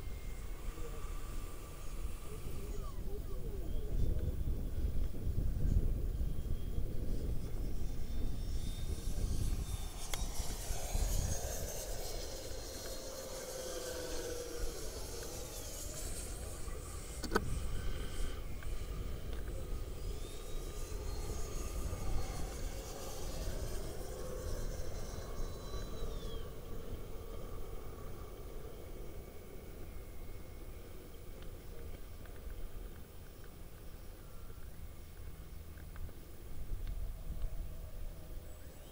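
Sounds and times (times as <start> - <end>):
electric jet fans whining: 0.0 - 38.9
wind rumble on microphone: 0.0 - 38.9.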